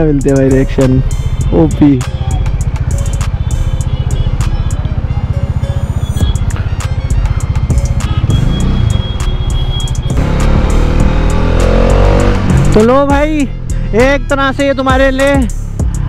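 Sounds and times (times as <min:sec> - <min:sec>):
background music with steady beat: 0:00.0 - 0:16.0
motorcycle engine: 0:00.1 - 0:14.0.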